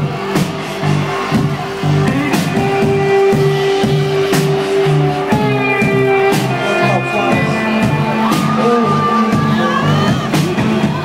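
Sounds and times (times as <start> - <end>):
live rock band playing: 0.0 - 11.0
pulsing bass: 0.0 - 11.0.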